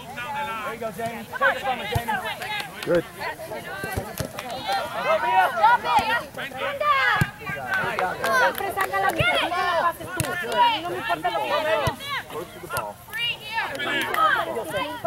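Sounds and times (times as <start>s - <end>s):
soccer ball kicks: 1.8s - 2.2s, 7.1s - 7.6s
girls shouting: 4.7s - 7.4s.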